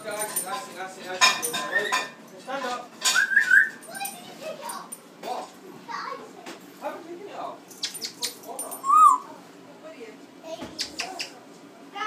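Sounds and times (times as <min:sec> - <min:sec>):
parrot whistle: 0:03.1 - 0:03.8, 0:08.8 - 0:09.3
parrot chattering call: 0:07.8 - 0:09.3.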